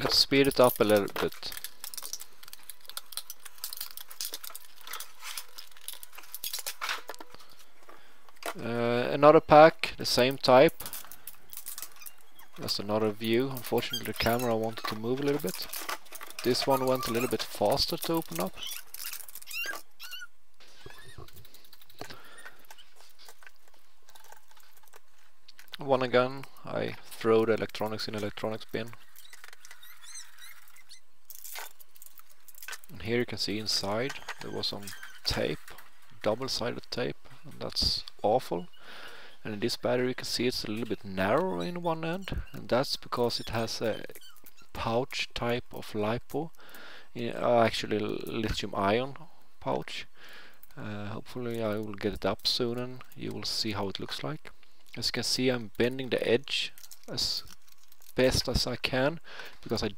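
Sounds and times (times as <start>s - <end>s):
plastic cracking: 0.0s - 8.7s, 10.6s - 20.0s, 21.0s - 25.8s, 27.0s - 36.4s, 55.6s - 58.8s
plastic battery case cracking apart: 0.7s - 7.4s
high squeaks: 11.4s - 12.7s, 13.3s - 23.4s, 28.0s - 31.7s, 33.8s - 35.7s, 41.2s - 44.9s.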